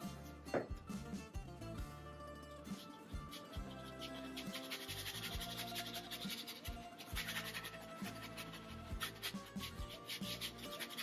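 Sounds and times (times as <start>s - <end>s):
soft background music: 0.0s - 11.0s
brush scrubbing paint on canvas: 2.7s - 11.0s.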